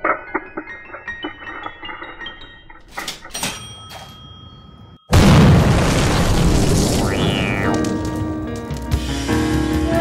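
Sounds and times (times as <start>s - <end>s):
explosion boom rumbling: 5.1s - 8.0s.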